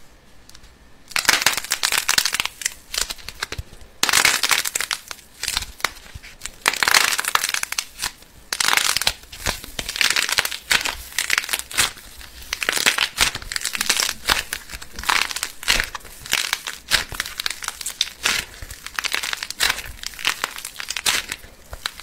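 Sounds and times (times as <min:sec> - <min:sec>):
metallic foil crinkling: 0:01.1 - 0:22.0.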